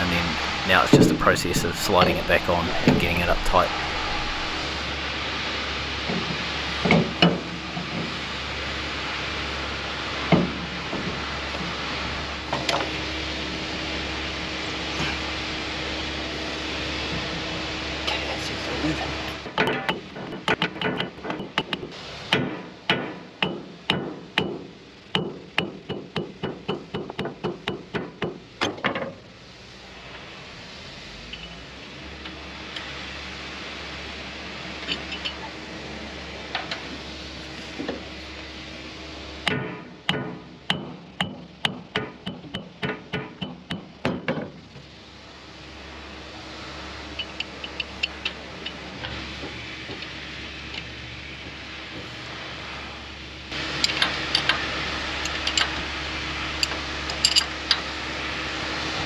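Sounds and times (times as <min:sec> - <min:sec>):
hammer striking metal: 0:00.0 - 0:04.7
steady background noise: 0:00.0 - 0:59.0.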